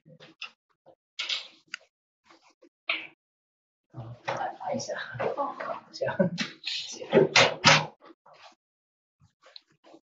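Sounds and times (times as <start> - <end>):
people talking: 4.0 - 7.7.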